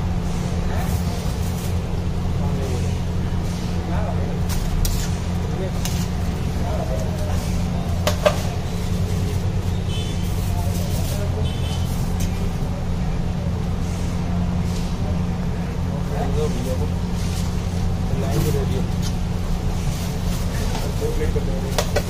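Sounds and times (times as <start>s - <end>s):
background chatter: 0.0s - 22.0s.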